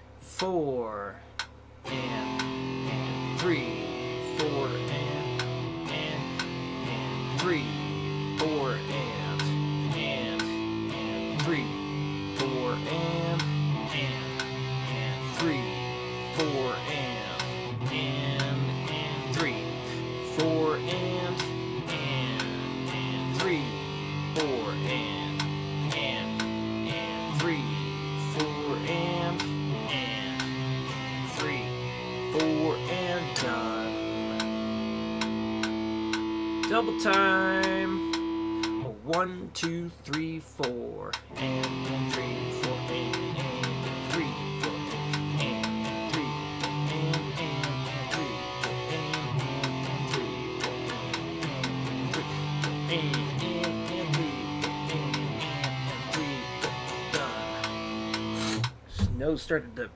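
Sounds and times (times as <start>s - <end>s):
electric guitar power chords: 1.4s - 40.2s, 41.1s - 59.4s.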